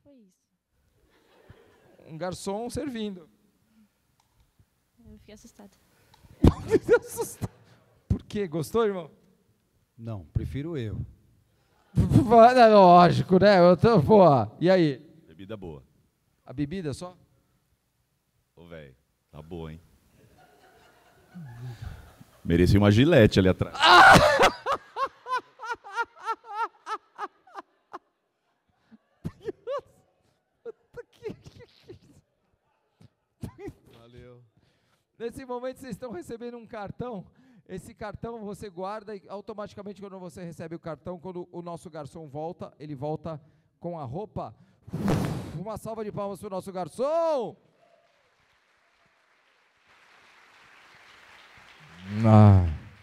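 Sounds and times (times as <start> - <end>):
person laughing in high bursts: 6.4 - 7.6, 23.8 - 28.0, 29.2 - 30.0
loud vocal outburst: 23.7 - 24.7, 51.9 - 53.0
faint audience applause: 47.8 - 53.0.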